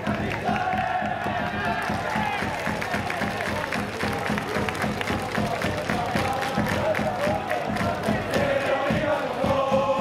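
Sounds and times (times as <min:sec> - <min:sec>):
voices chanting: 0:00.0 - 0:03.7, 0:05.1 - 0:10.0
drum beating steadily: 0:00.0 - 0:10.0
people clapping: 0:00.0 - 0:10.0.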